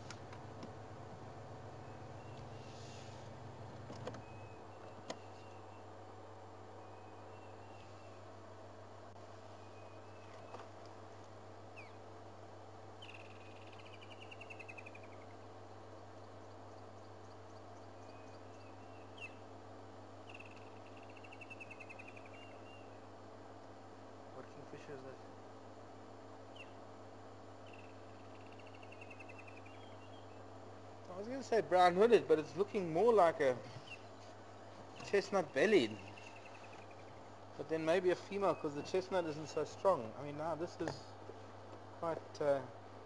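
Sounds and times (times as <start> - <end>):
faint low hum: 0.0 - 43.0
bird chirps: 1.8 - 2.7, 4.2 - 5.9, 6.8 - 8.2, 11.7 - 12.0, 13.0 - 15.4, 16.2 - 19.4, 20.2 - 23.0, 26.5 - 26.8, 27.6 - 30.4, 33.8 - 34.2, 35.0 - 37.3
descending rattling bird trill: 13.0 - 15.5, 16.2 - 19.5, 20.2 - 23.0, 27.6 - 30.4.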